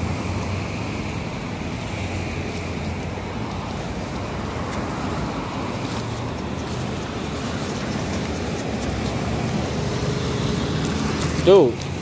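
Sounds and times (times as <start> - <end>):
cars passing on street: 0.0 - 12.0.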